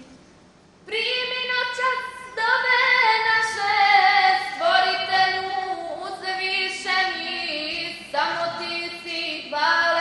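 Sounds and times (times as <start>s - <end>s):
women singing a hymn: 0.9s - 10.0s.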